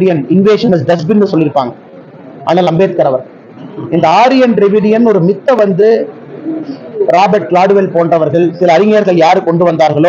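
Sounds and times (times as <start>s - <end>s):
man speaking: 0.0s - 1.8s, 2.4s - 6.1s, 7.0s - 10.0s.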